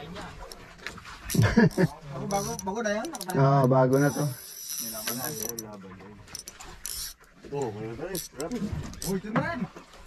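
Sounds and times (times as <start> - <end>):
fishing reel cranking whirr: 1.7 - 3.3, 3.9 - 5.7, 6.3 - 7.3.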